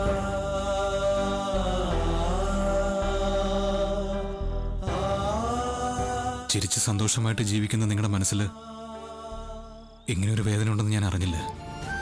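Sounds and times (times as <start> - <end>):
low drone: 0.0 - 6.5.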